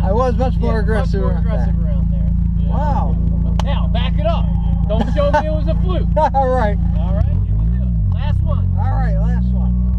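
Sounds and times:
car engine running at low revs: 0.0s - 9.9s
voices talking: 0.0s - 9.9s.

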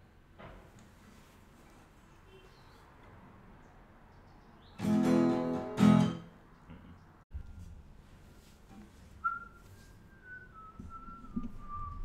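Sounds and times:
faint shuffling: 0.8s - 3.0s, 7.3s - 12.0s
person whistling a tune: 9.2s - 12.0s.

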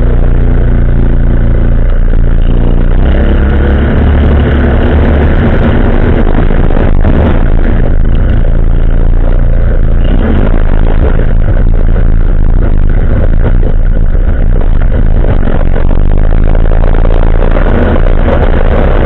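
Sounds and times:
quad bike engine running: 0.0s - 19.0s.

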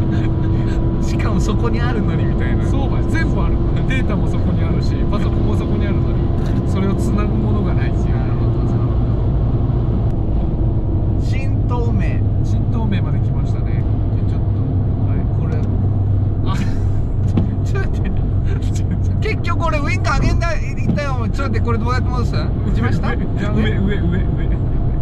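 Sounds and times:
car engine drone inside cabin: 0.0s - 25.0s.

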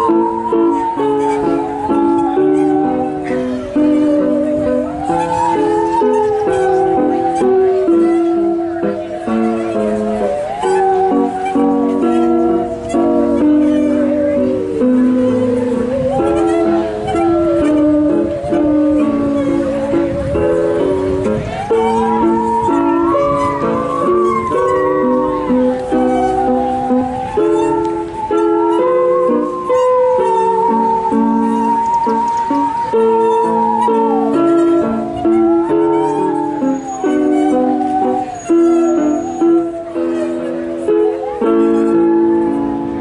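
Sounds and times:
bowed musical saws playing: 0.0s - 43.0s
sustained instrument chords: 0.0s - 43.0s.

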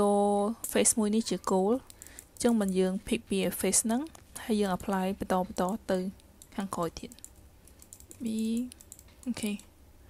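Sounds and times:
faint computer input clicking: 6.4s - 9.7s
person hesitation sounds: 7.9s - 9.7s.

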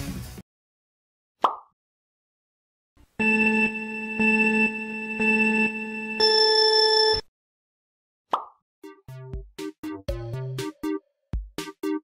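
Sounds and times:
pulsing synth countdown tone: 3.2s - 7.2s.

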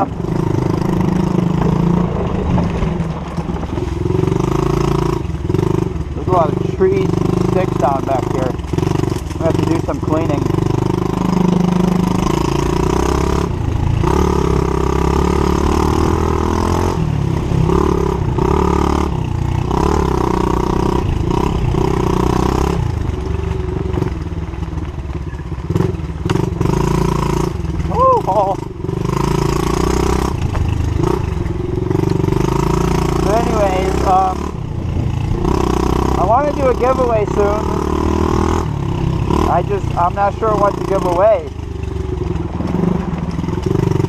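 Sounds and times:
motorbike engine revving: 0.0s - 44.0s.

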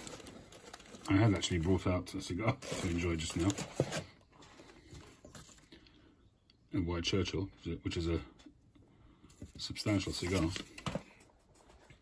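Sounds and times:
faint handling sounds: 0.0s - 6.2s, 8.3s - 12.0s.

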